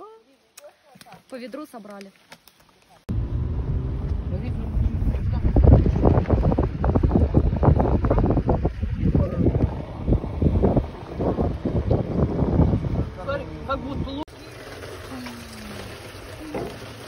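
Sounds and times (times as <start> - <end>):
wind buffeting microphone: 3.4 - 14.3.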